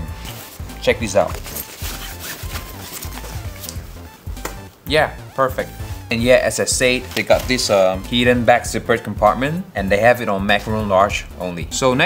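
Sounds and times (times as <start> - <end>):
background music: 0.0 - 12.0
fabric rustling and rubbing: 0.1 - 4.2.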